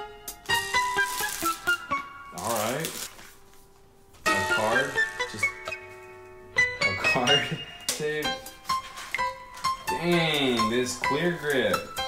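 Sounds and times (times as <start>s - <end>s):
background music: 0.0s - 12.0s
plastic wrapper crinkling: 0.8s - 3.7s.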